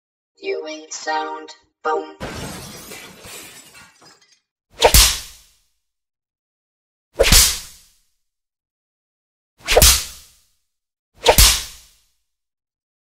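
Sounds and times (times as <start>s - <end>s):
bullwhip cracks: 4.8s - 5.4s, 7.2s - 8.0s, 9.6s - 10.3s, 11.2s - 12.0s.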